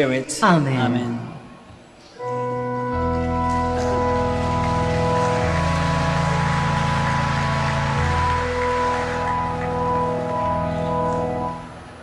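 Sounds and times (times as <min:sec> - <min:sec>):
sustained organ chords: 0:00.1 - 0:12.0.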